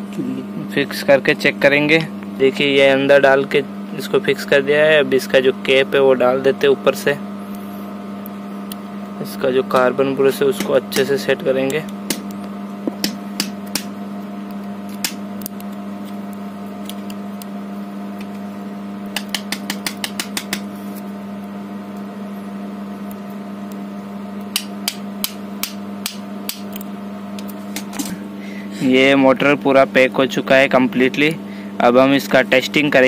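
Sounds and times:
steady hum: 0.0s - 33.0s.

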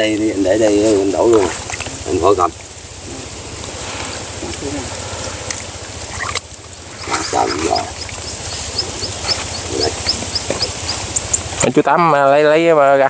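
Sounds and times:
muddy water sloshing: 0.6s - 11.6s
low rumble: 1.1s - 11.6s.

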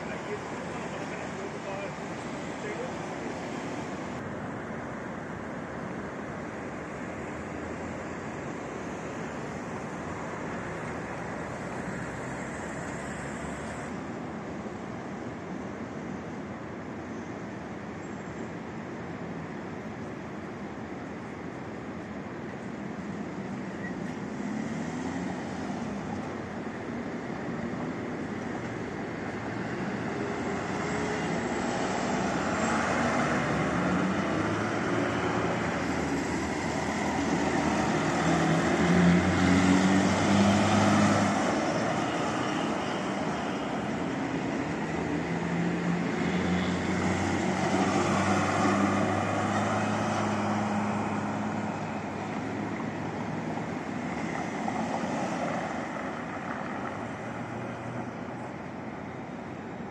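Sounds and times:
tyres on road: 0.0s - 59.9s
vehicle engines: 0.0s - 59.9s.

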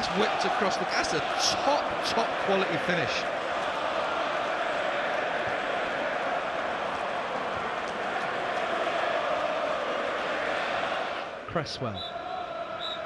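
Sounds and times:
stadium crowd din: 0.0s - 13.0s.

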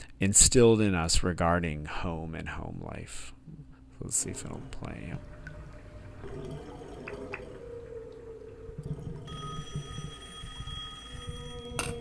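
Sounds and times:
steady high tone: 4.2s - 12.0s
whale song recording: 4.6s - 12.0s.

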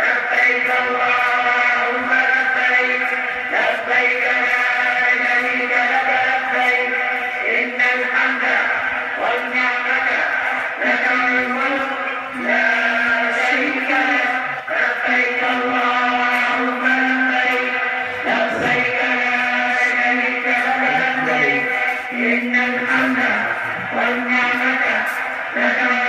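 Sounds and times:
person chanting in long notes: 0.0s - 26.0s.

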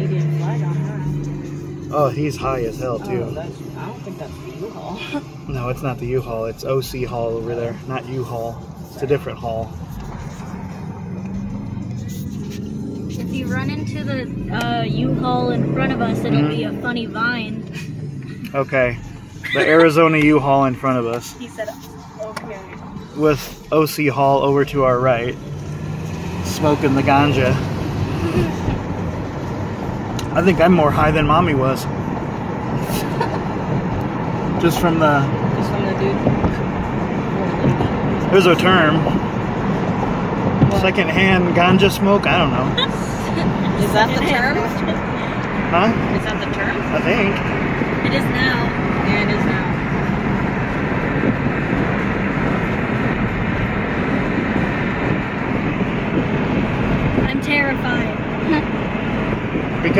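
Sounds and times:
car road noise from inside: 0.0s - 59.9s.

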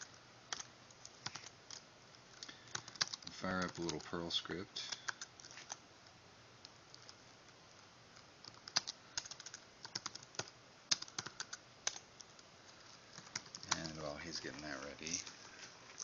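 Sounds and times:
computer keyboard typing: 0.0s - 4.2s, 4.8s - 5.8s, 6.9s - 7.2s, 8.1s - 12.4s, 13.1s - 15.3s.

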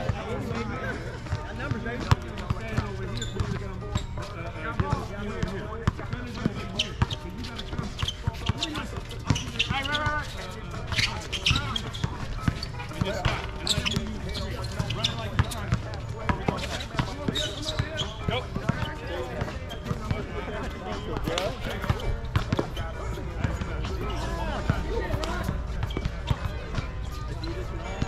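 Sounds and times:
players calling out: 0.0s - 28.0s
basketball bouncing: 11.5s - 20.3s, 21.7s - 22.8s.

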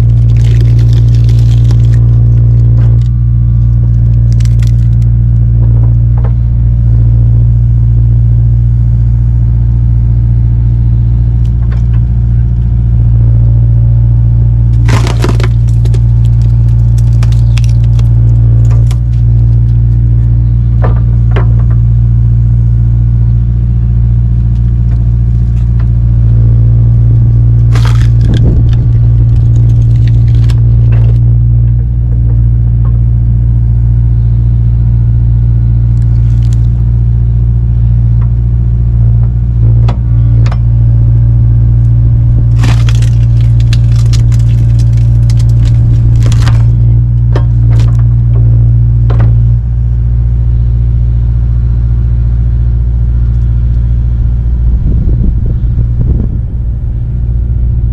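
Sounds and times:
wood splitting cracks: 0.0s - 5.1s, 14.7s - 21.8s, 24.4s - 26.0s, 27.6s - 31.3s, 35.9s - 36.8s, 42.3s - 48.4s
excavator diesel engine running: 0.0s - 57.9s.

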